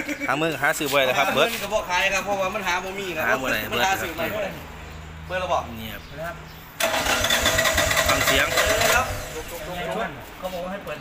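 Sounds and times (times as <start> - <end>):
generator engine starting and whining: 6.8 - 9.6.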